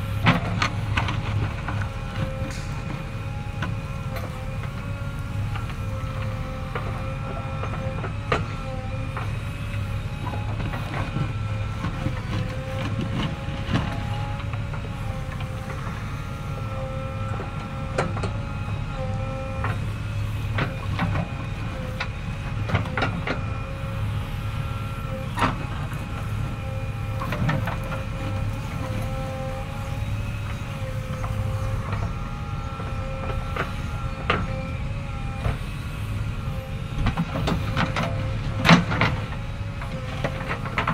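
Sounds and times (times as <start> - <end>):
diesel engine under load: 0.0 - 40.9
hydraulic whine: 0.0 - 40.9.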